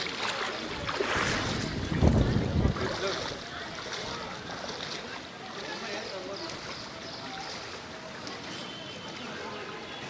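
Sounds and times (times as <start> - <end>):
faint voices: 0.0 - 10.0
water sloshing around wading legs: 0.0 - 10.0.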